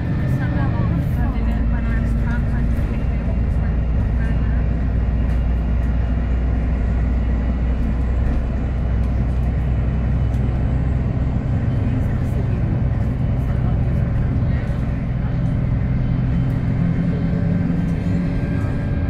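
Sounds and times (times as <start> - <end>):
bus engine and road drone: 0.0 - 19.0
bus body clicks and rattles: 1.4 - 15.6.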